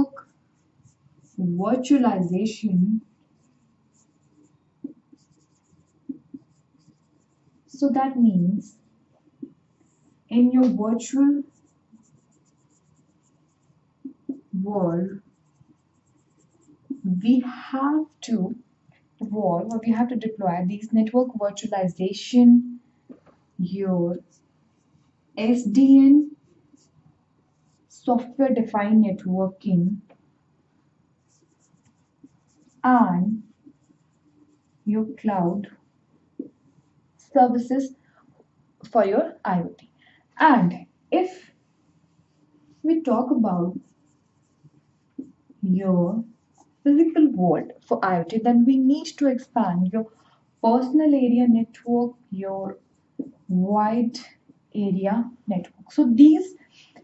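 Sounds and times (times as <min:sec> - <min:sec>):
marker writing on whiteboard: 0:00.0 - 0:18.4, 0:23.1 - 0:30.3, 0:31.1 - 0:38.0, 0:40.4 - 0:51.2, 0:51.8 - 0:53.6
marker squeaking on whiteboard: 0:03.2 - 0:07.6, 0:09.4 - 0:18.2, 0:31.2 - 0:34.9, 0:42.3 - 0:46.9.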